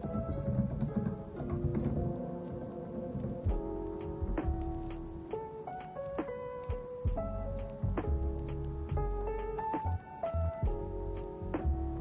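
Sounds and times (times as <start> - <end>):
laptop keyboard typing: 0.0 - 3.7
lo-fi background music: 0.0 - 12.0.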